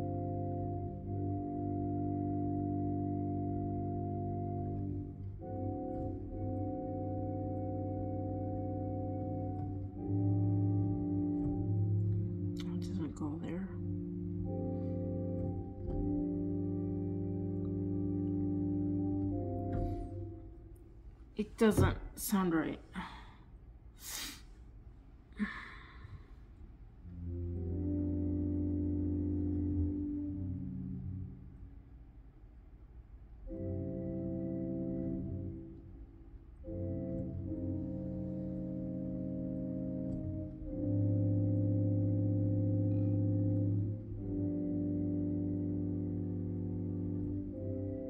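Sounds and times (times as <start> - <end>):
organ playing slow chords: 0.0 - 21.2, 25.4 - 32.1, 32.8 - 48.0.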